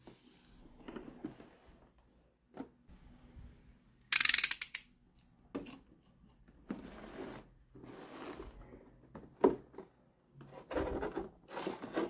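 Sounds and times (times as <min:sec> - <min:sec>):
utility knife blade ratchet clicks: 0:04.1 - 0:04.9.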